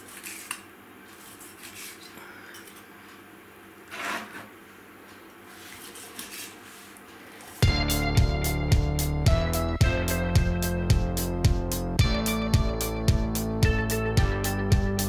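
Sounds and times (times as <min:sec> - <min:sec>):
loud music: 0:07.6 - 0:15.0.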